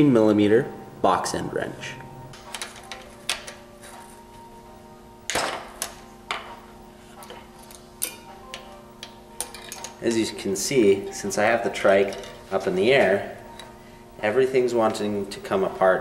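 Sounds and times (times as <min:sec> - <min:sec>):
steady hum: 0:00.0 - 0:16.0.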